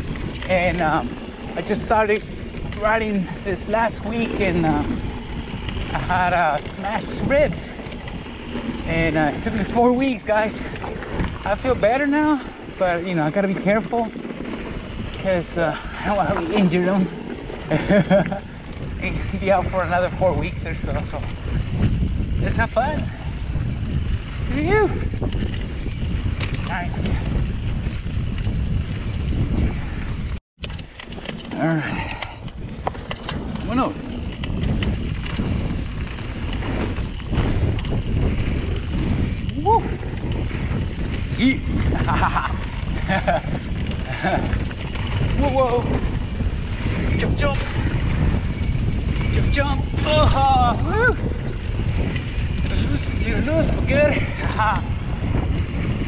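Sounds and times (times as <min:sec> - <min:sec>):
tyres rolling on dirt trail: 0:00.0 - 0:56.0
wind buffeting microphone: 0:00.0 - 0:56.0.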